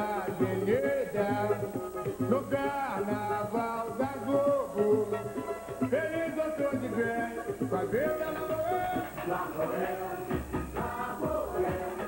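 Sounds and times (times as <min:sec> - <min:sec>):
person singing a melody: 0:00.0 - 0:12.0.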